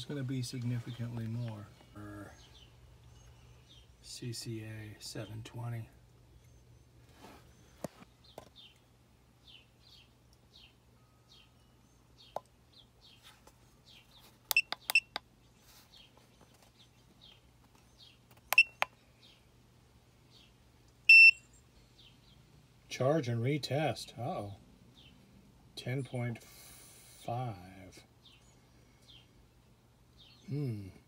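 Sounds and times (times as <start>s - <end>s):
battery tester key-press beeps: 14.5s - 15.2s, 18.5s - 18.9s, 21.1s - 21.4s
long loud beep: 21.1s - 21.4s
faint chirps: 30.2s - 31.0s.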